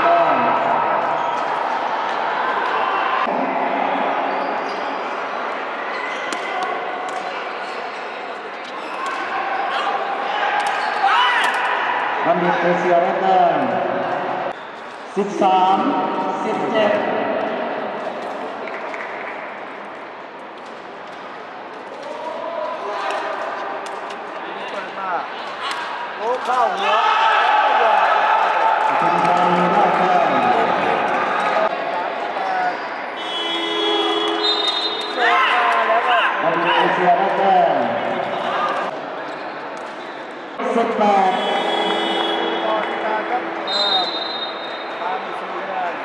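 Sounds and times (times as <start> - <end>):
crowd chatter in a hall: 0.0 - 46.0.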